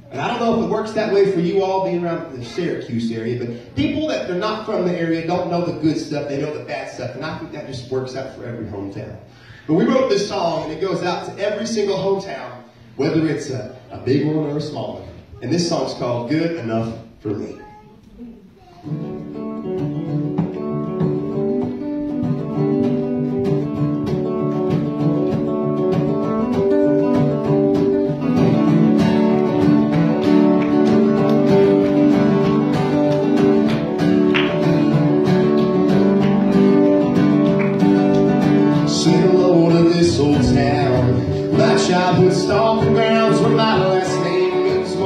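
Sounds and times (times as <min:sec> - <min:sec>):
acoustic country band playing: 0:00.0 - 0:15.7, 0:18.6 - 0:45.0
acoustic guitars: 0:00.0 - 0:45.0.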